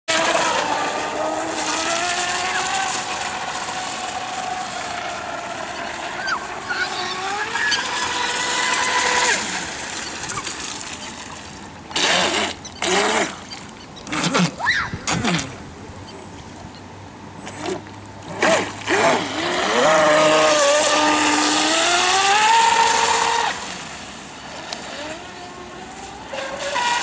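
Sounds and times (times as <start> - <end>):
electric motor whining: 17.5 - 23.7.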